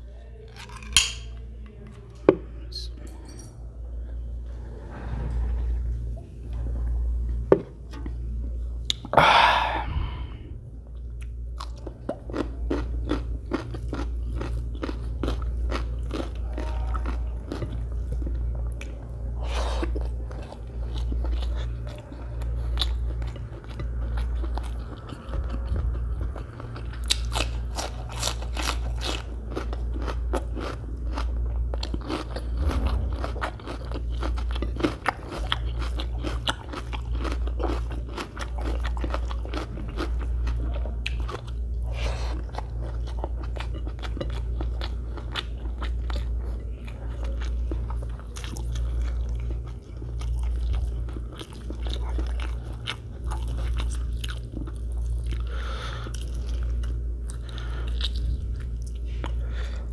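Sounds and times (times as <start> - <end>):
chewing rice: 0.0 - 1.8, 10.9 - 59.9
steady low hum: 0.0 - 59.9
crunching raw onion: 0.5 - 1.4, 22.7 - 55.5.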